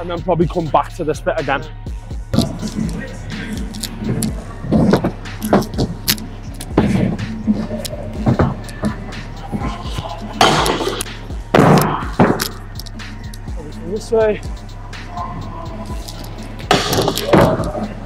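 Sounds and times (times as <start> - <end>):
background music: 0.0 - 18.0.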